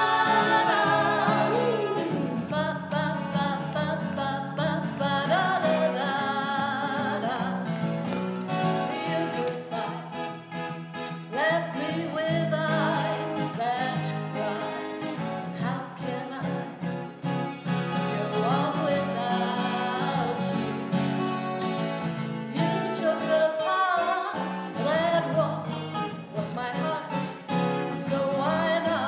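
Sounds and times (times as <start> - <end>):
woman singing: 0.0 - 10.4, 11.2 - 16.9, 17.9 - 20.8, 22.5 - 29.0
acoustic guitar: 0.0 - 29.0.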